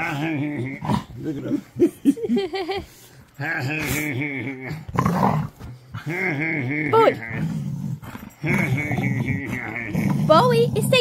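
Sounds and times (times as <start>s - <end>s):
dog growling: 0.0s - 1.9s, 3.4s - 11.0s.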